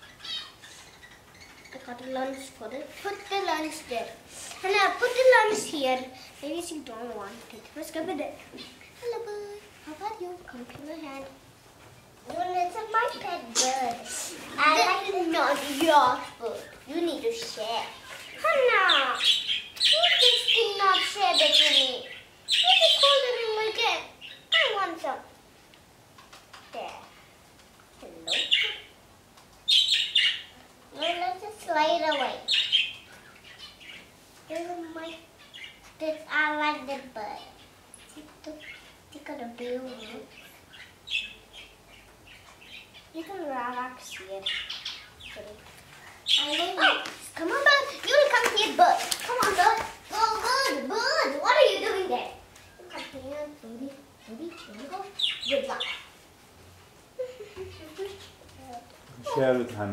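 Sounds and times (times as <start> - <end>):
budgie chirping: 0.0 - 3.4, 17.8 - 23.5, 44.0 - 51.2.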